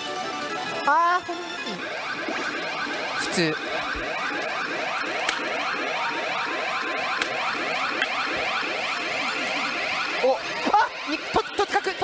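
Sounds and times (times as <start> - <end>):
warbling electronic alarm tone: 1.2 - 12.0.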